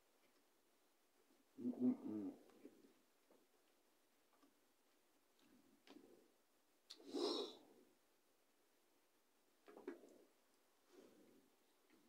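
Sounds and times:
woman humming while chewing: 1.6 - 2.4.

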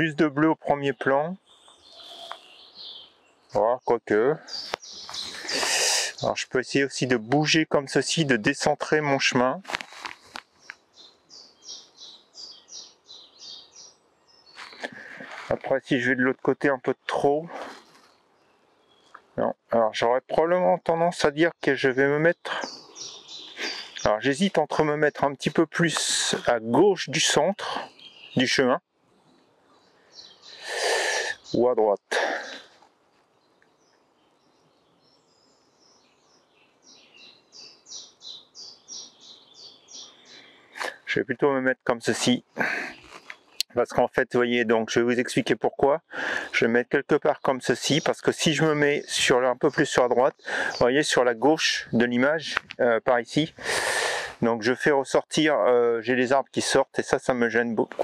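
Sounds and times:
songbird singing: 0.0 - 58.0
songbird singing high notes: 0.9 - 3.6, 22.0 - 26.6
breathy burst of noise: 5.2 - 6.2, 53.6 - 54.4.

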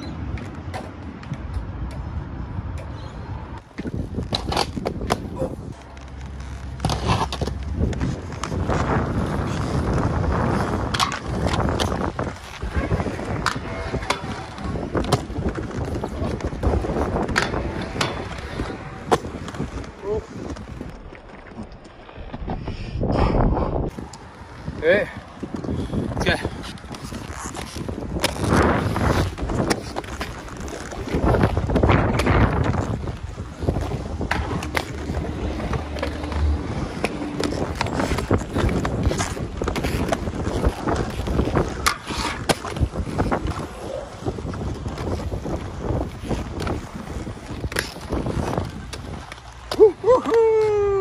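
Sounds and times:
skate wheels rolling on concrete: 0.0 - 51.0
wind buffeting microphone: 6.7 - 51.0.

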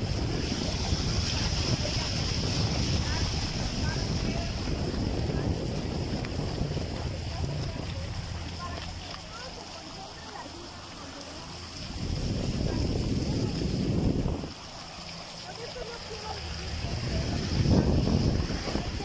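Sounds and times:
boat motor running: 0.0 - 19.0
wind buffeting microphone: 0.0 - 19.0.

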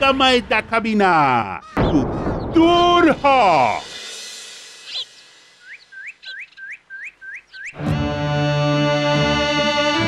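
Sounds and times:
small bird chirping: 4.8 - 7.8.

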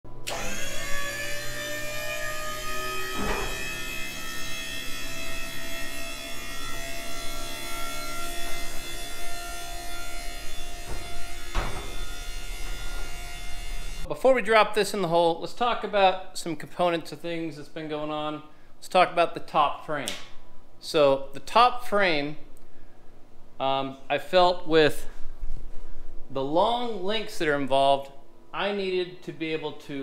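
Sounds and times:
scissor lift mechanical hum: 0.1 - 14.1
sharp knocks: 10.8 - 13.2.

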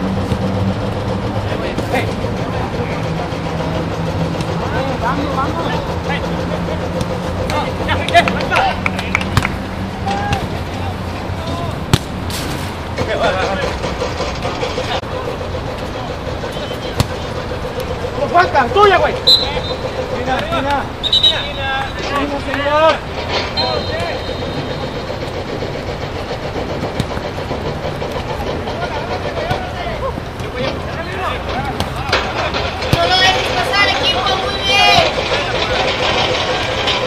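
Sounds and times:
steady low hum: 0.0 - 37.0
players' distant shouts: 4.3 - 12.0, 14.6 - 25.1, 28.0 - 37.0
ball being kicked: 11.4 - 12.4, 16.9 - 17.2.

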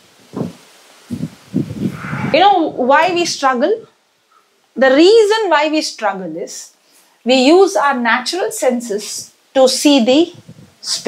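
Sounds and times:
microphone handling thumps and rustles: 0.2 - 1.9, 10.3 - 10.8.

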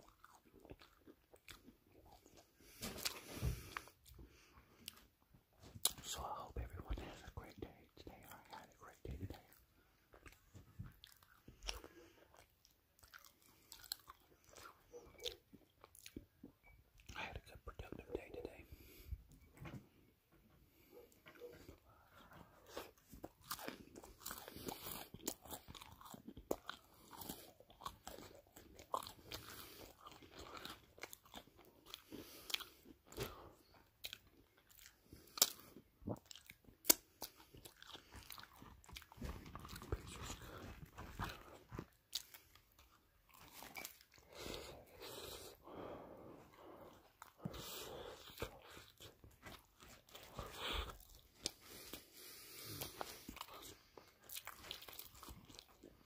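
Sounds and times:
crunchy pizza chewing: 0.0 - 19.0, 20.8 - 56.0.

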